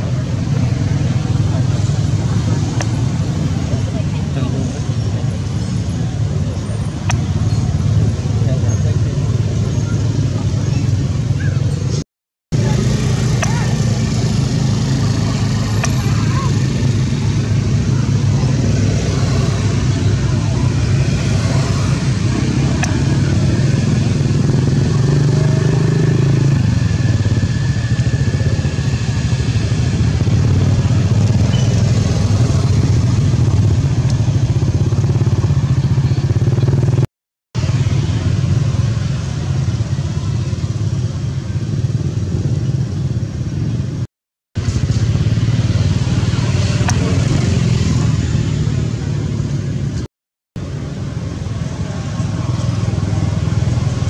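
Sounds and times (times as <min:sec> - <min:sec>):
motor vehicle engines droning: 0:00.0 - 0:54.0.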